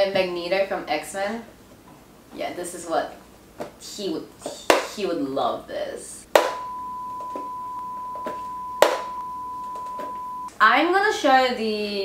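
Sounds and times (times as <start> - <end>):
sharp knock: 6.4 - 6.7, 8.8 - 9.2
high electronic beep tone: 6.5 - 10.5.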